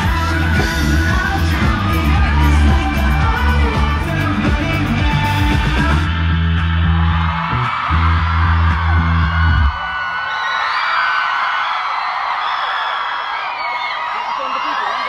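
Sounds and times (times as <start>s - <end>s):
band playing heavy chords: 0.0s - 9.7s
crowd screaming and cheering: 0.0s - 15.0s.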